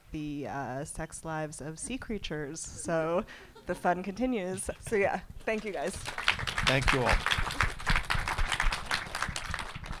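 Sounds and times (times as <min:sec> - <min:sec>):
audience applauding: 0:05.9 - 0:10.0.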